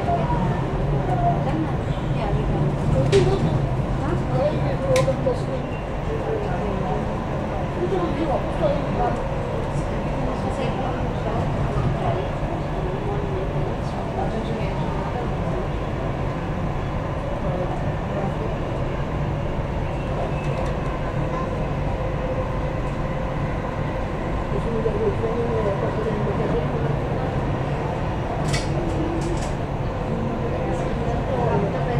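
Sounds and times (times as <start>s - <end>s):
faint passenger voices: 0.0s - 31.9s
train rumble inside carriage: 0.0s - 31.9s.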